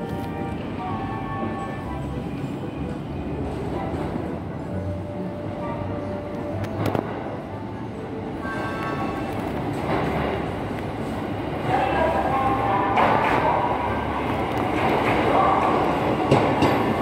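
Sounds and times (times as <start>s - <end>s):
electric train rumbling in: 0.0s - 17.0s
station platform background noise: 0.0s - 17.0s.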